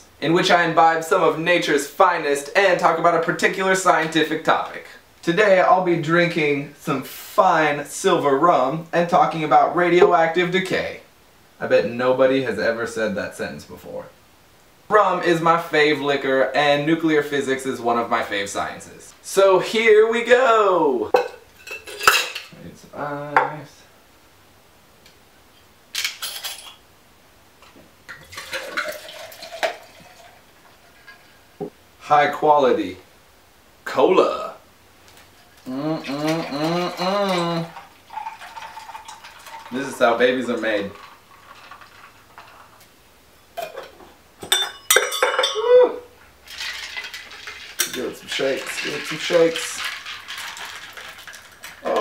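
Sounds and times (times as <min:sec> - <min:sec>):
liquor pouring into shaker: 0:28.1 - 0:31.3, 0:35.5 - 0:42.8, 0:46.4 - 0:52.0
metal cocktail shaker clinking: 0:43.6 - 0:45.7, 0:46.5 - 0:52.0.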